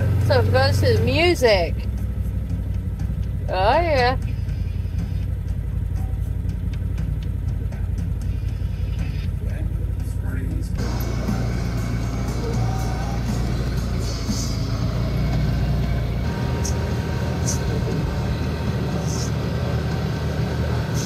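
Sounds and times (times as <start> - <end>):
rushing noise of moving vehicle: 0.0 - 21.0
utility vehicle engine droning: 0.0 - 21.0.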